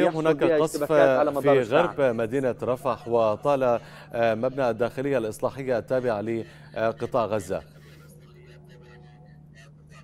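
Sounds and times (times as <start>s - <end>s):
distant crowd voices: 0.0s - 10.0s
low electrical hum: 0.0s - 10.0s.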